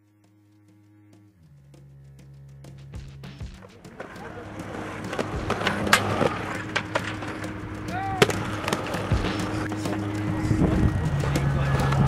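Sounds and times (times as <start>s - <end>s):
background music: 0.0s - 12.0s
skateboard wheels rolling on asphalt: 1.0s - 12.0s
skateboard clacks: 2.8s - 12.0s.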